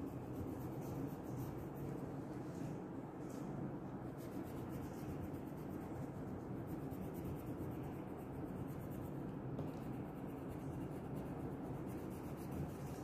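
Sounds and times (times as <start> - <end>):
crayon scratching on paper: 0.0 - 2.1, 4.1 - 13.0
low background hum: 0.0 - 13.0.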